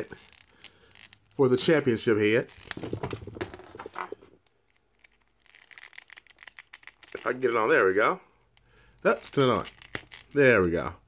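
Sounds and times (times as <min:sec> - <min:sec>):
plastic rubbing under fingers: 0:00.0 - 0:07.8.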